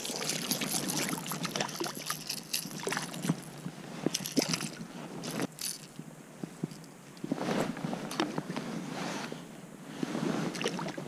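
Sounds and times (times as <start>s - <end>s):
water splashing: 0.0s - 3.4s.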